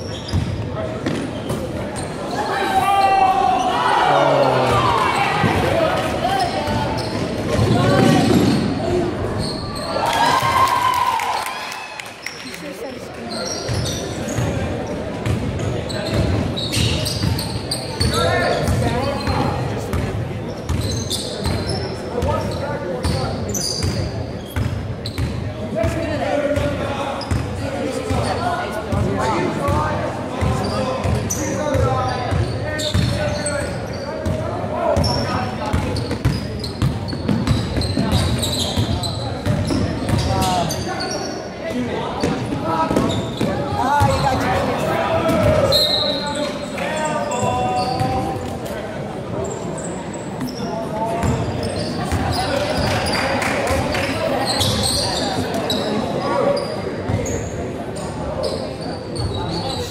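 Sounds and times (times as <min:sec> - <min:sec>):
chatter of spectators: 0:00.0 - 0:59.9.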